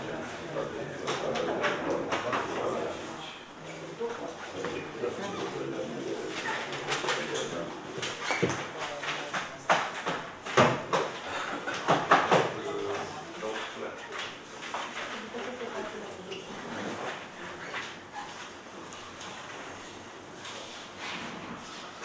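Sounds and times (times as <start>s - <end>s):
murmur of voices: 0.0s - 10.4s.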